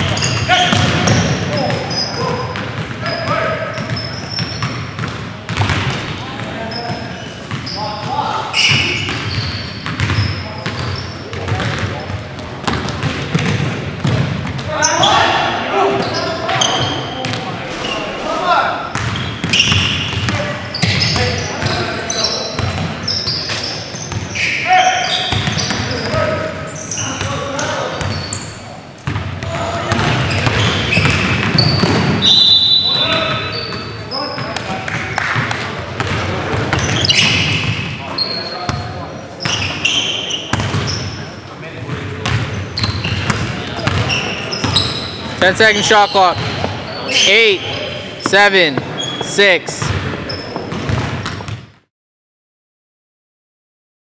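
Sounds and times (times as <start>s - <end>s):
players' voices and calls: 0.0s - 51.6s
basketball dribbling on hardwood floor: 4.6s - 5.8s, 48.8s - 51.7s.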